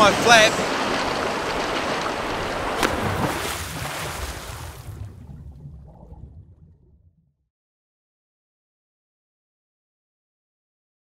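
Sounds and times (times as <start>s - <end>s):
wind: 0.0s - 5.9s
sea rushing: 0.0s - 6.7s.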